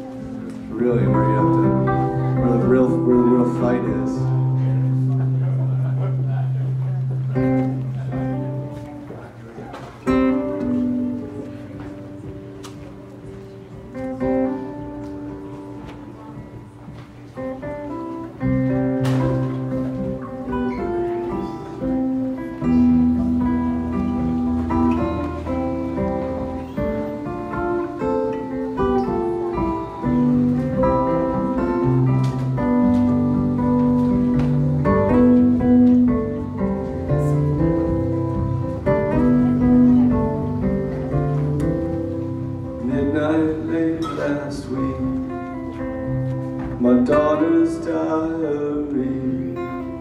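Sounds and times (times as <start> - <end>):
guitar chord ringing: 0.0 - 8.8, 17.8 - 50.0
keyboard notes: 0.0 - 50.0
live band music: 0.0 - 50.0.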